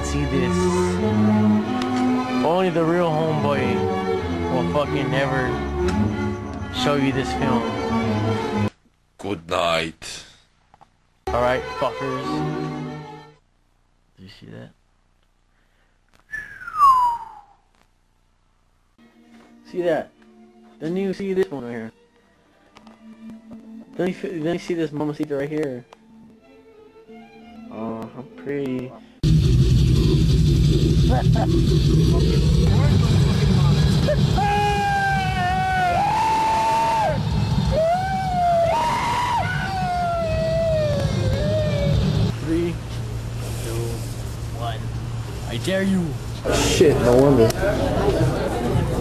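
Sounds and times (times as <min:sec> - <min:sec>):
high wailing tone: 0:16.3 - 0:17.6, 0:34.1 - 0:42.3
person whistling falling note: 0:16.3 - 0:17.7
road and engine rumble: 0:29.2 - 0:34.4, 0:40.9 - 0:49.0.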